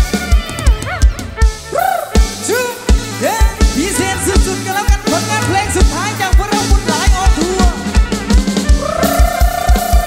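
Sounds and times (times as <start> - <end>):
sliding lead melody: 0.0 - 10.0.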